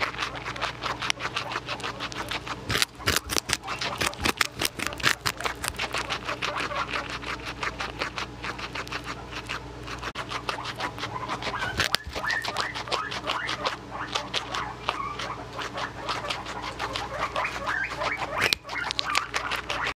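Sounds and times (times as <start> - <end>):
guinea pig crunching carrot: 0.0 - 20.0.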